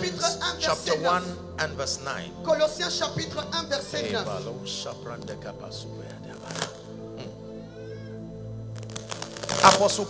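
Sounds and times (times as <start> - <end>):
soft sustained chord music: 0.0 - 10.0.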